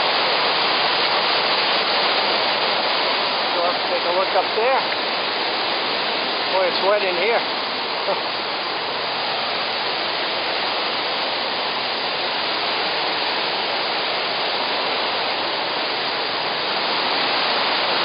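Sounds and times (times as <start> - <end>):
waterfall rushing: 0.0 - 18.0.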